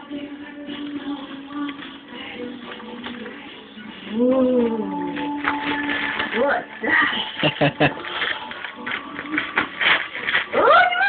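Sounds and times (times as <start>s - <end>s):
faint music: 0.0s - 11.0s
gift wrapping rustling: 0.2s - 11.0s.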